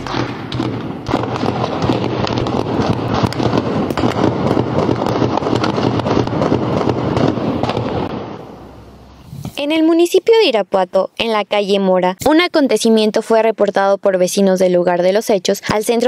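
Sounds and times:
rapid gunshots: 0.0s - 8.4s.

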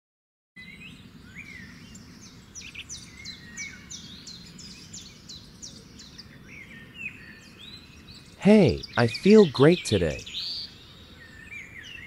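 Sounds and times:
birds chirping: 7.7s - 11.0s.

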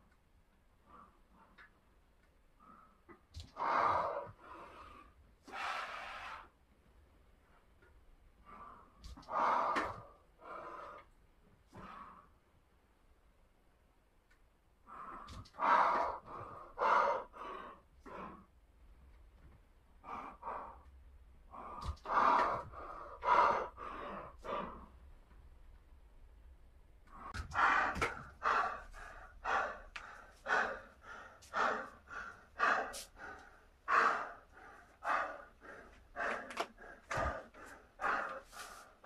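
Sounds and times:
man breathing hard: 2.5s - 6.7s, 8.3s - 12.5s, 14.8s - 18.6s, 20.0s - 25.0s, 27.1s - 39.0s.

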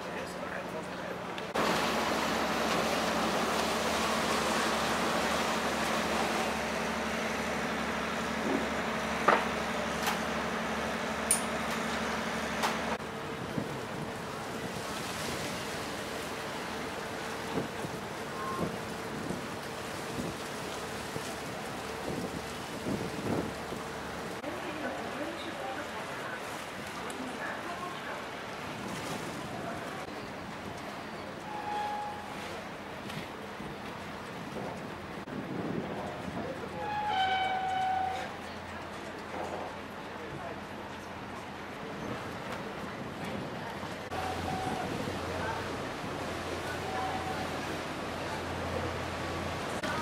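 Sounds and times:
wind rushing over microphone: 22.0s - 23.8s, 34.4s - 36.7s.

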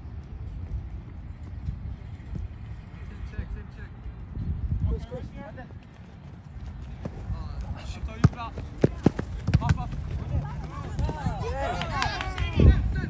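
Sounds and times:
wind rumble on microphone: 0.0s - 13.0s
ball being kicked: 8.1s - 10.3s.

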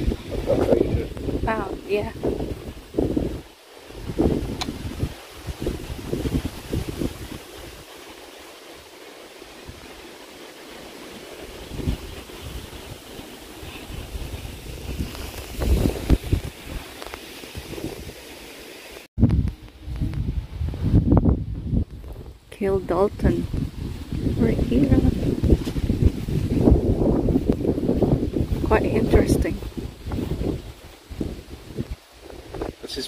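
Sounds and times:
wind buffeting microphone: 0.0s - 18.2s, 19.2s - 33.0s
low rumbling: 19.2s - 32.6s.

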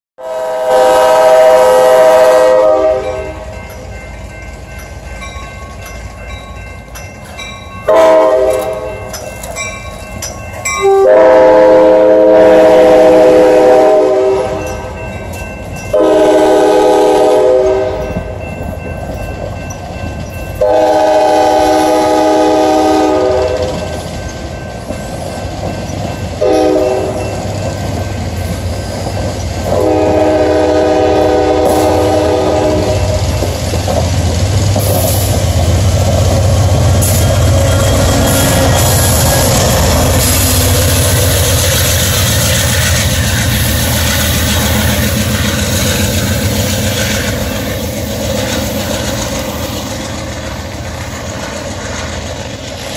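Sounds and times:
train horn blasts: 0.2s - 3.6s, 7.9s - 9.1s, 10.8s - 15.0s, 15.9s - 18.4s, 20.6s - 23.8s, 26.4s - 27.3s, 29.7s - 33.4s, 37.0s - 41.6s
train wheels clattering: 3.0s - 11.6s, 12.7s - 52.9s.

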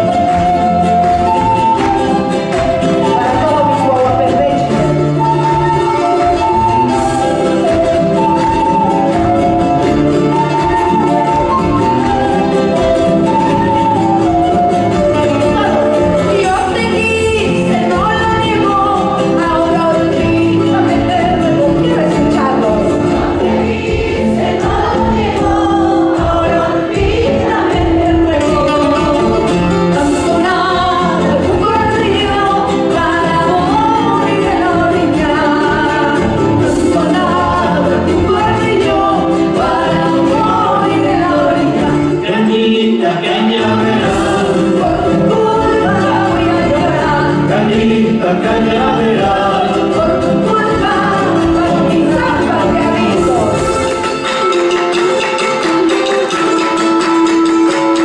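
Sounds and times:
folk band playing: 0.0s - 58.0s
strummed acoustic guitars: 0.0s - 58.0s
women singing together: 10.3s - 53.8s.

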